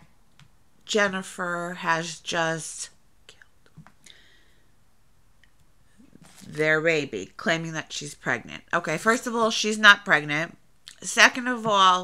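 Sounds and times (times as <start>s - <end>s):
soft breath: 3.3s - 4.8s.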